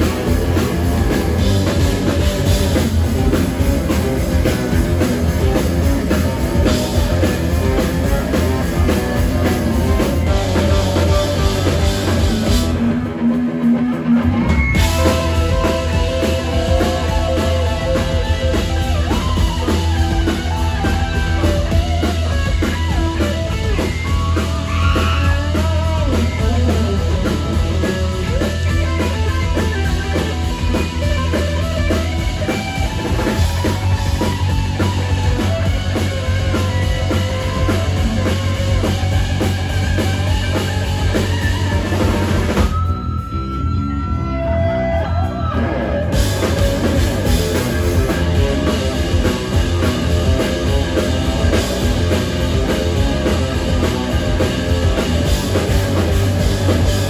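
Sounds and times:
bass: 0.0 - 57.0
drums: 0.0 - 57.0
electric guitar: 0.0 - 57.0.

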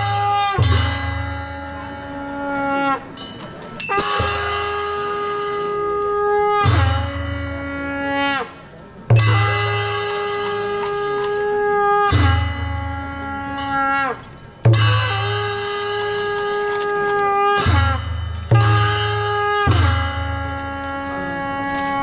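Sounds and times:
horn-like wind instrument: 0.0 - 22.0.

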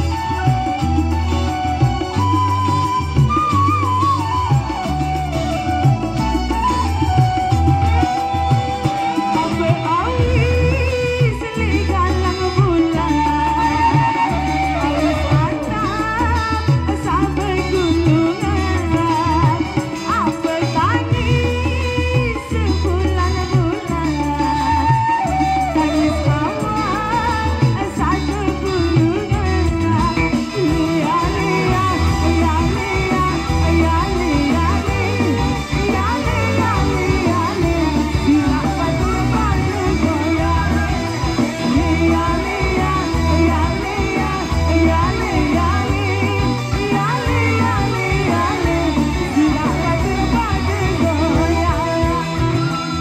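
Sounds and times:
bamboo flute long note: 0.0 - 10.5
bass: 0.0 - 53.0
live band playing pop music: 0.0 - 53.0
woman singing into microphone: 0.0 - 53.0.

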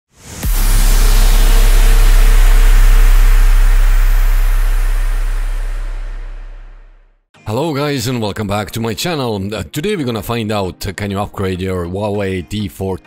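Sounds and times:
rising rush into heavy hit: 0.1 - 7.1
deep bass boom with rumble: 0.2 - 7.2.

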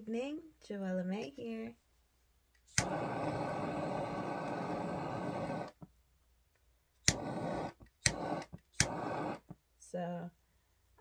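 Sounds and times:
lighter clicking: 2.7 - 5.8, 7.0 - 9.4
torch lighter flame hissing: 2.7 - 5.8, 7.0 - 9.6.

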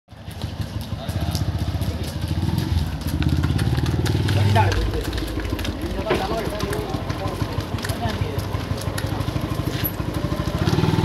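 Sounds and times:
motorcycle engine rumbling: 0.1 - 11.0.

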